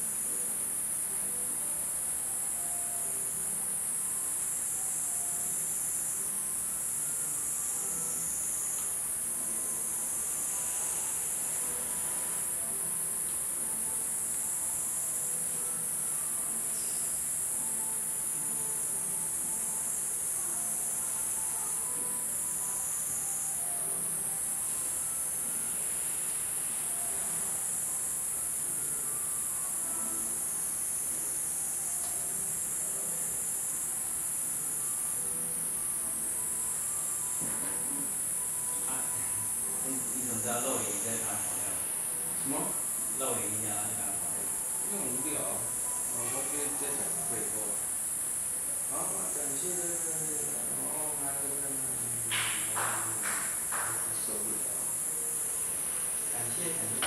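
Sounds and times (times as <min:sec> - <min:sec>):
high-pitched insect chorus: 0:00.0 - 0:57.0.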